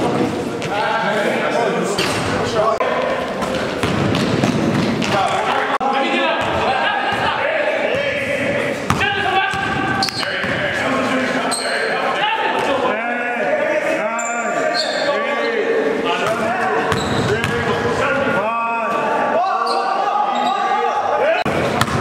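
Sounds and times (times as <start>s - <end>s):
players calling out: 0.7s - 22.0s
basketball bouncing on court: 3.4s - 5.3s, 8.9s - 10.6s, 21.5s - 22.0s.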